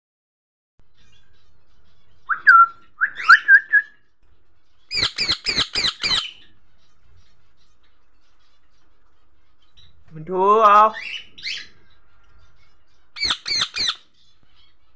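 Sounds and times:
parakeet sharp chirps: 0:04.9 - 0:06.4, 0:13.2 - 0:14.8.

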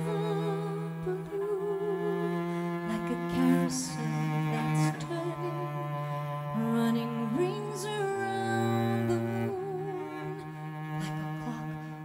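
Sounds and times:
solo cello melody: 0:00.0 - 0:12.0.

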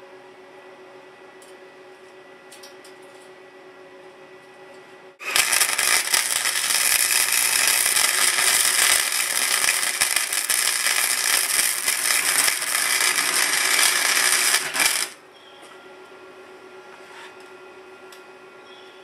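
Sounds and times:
arc welding crackling hiss: 0:05.2 - 0:15.2.

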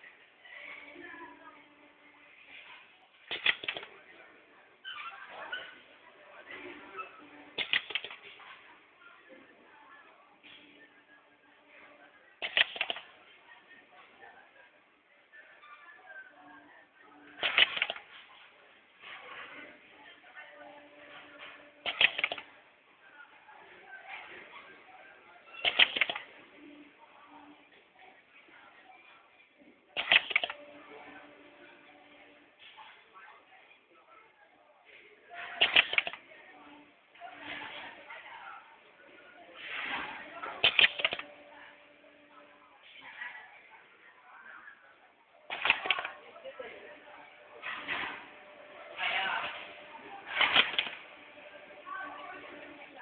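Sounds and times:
wire-stripping machine clacking: 0:30.0 - 0:30.5.

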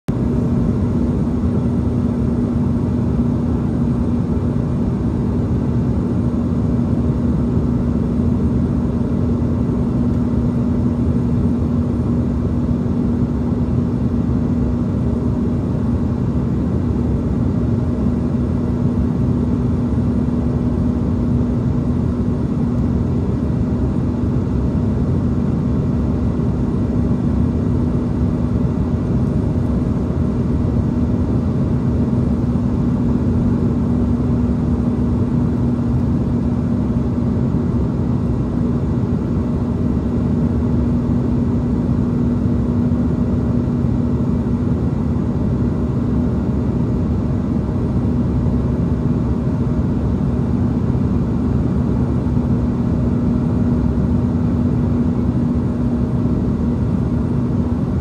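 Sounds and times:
constant low hum: 0:00.1 - 0:58.0
jet engine drone: 0:00.1 - 0:58.0.

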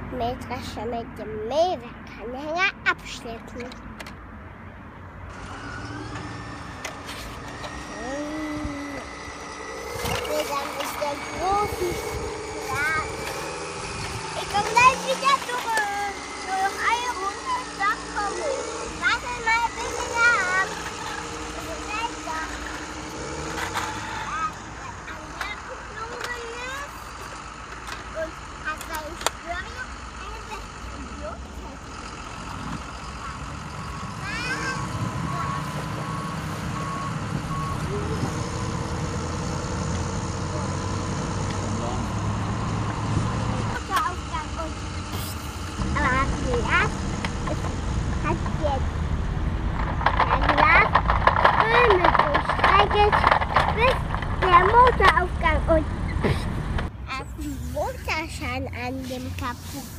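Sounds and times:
child's voice: 0:00.0 - 0:03.8, 0:07.9 - 0:09.2, 0:09.9 - 0:13.5, 0:14.3 - 0:22.7, 0:23.8 - 0:27.3, 0:28.0 - 0:31.9, 0:34.1 - 0:35.9, 0:43.7 - 0:44.8, 0:45.8 - 0:48.8, 0:50.2 - 0:51.0, 0:51.6 - 0:56.4, 0:57.0 - 0:59.9
vehicle engine rumble: 0:00.0 - 0:59.9
reversing beeps: 0:33.7 - 0:38.6.

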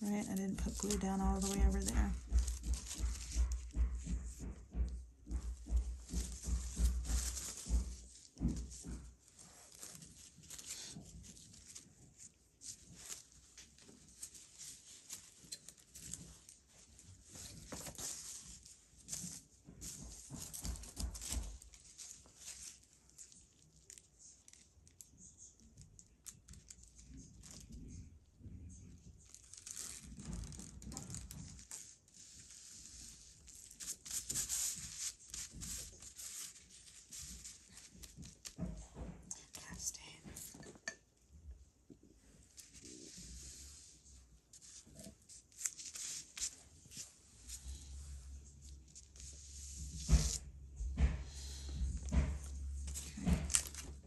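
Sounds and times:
tissue paper crinkling and tearing: 0:00.0 - 0:04.4, 0:05.4 - 0:28.0, 0:28.9 - 0:38.6, 0:42.4 - 0:50.4, 0:52.6 - 0:54.0.

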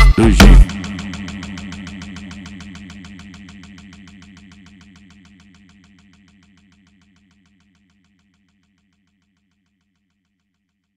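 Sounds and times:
buzzy pulsing funk loop: 0:00.0 - 0:05.0.

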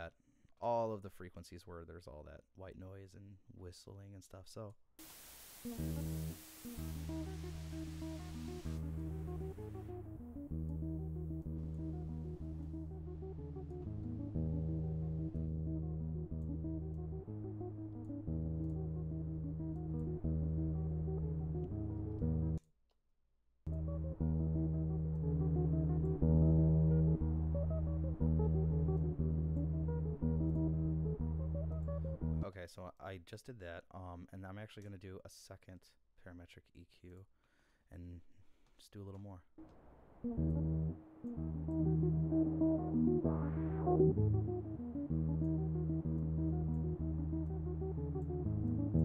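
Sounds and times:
white-noise hiss: 0:05.0 - 0:10.2.

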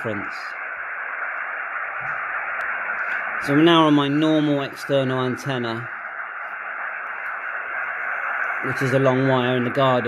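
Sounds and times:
radio static hiss from speaker: 0:00.0 - 0:10.0.

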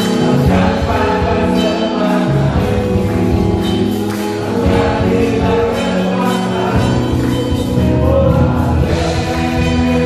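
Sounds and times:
worship band with singers: 0:00.0 - 0:10.0.

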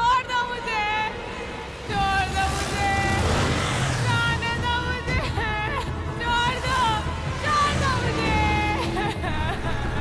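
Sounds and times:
music with long held tones: 0:00.0 - 0:10.0
motorcycle engines rumbling: 0:00.9 - 0:10.0.

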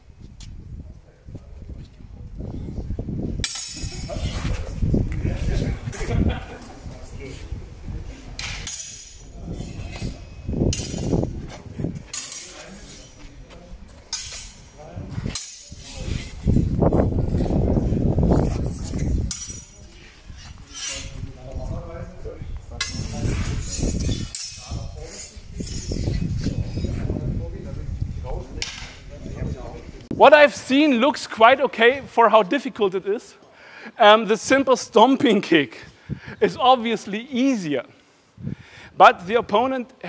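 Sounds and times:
swords clinking: 0:03.4 - 0:04.3, 0:08.4 - 0:11.2, 0:12.1 - 0:13.3, 0:14.1 - 0:16.0, 0:19.2 - 0:21.2, 0:22.8 - 0:26.0
indistinct chatter: 0:03.4 - 0:30.2.

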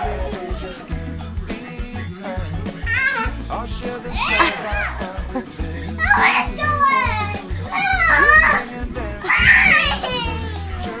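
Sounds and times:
children squealing: 0:02.8 - 0:03.4, 0:04.1 - 0:05.0, 0:06.0 - 0:07.0, 0:07.7 - 0:11.0.

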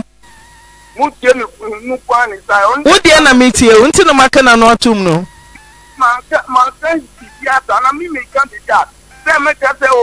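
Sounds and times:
person speaking: 0:05.9 - 0:10.0.

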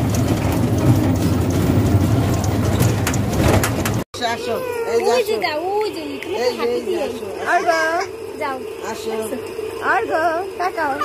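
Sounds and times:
low engine rumble with rattling: 0:00.0 - 0:04.0.

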